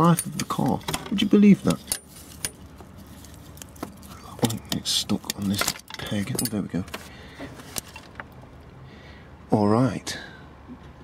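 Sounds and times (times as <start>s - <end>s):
gasket rustling: 0.0s - 8.4s.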